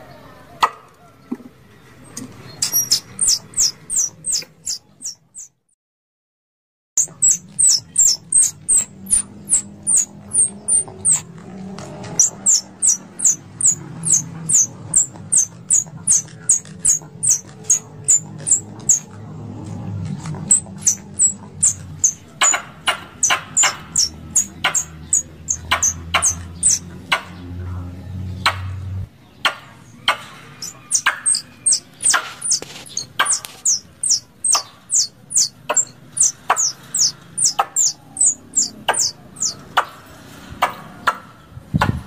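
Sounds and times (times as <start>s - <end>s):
squirrel calling sharp chips: 2.6s - 5.5s, 7.0s - 11.2s, 12.1s - 19.0s, 20.5s - 26.8s, 30.6s - 39.6s.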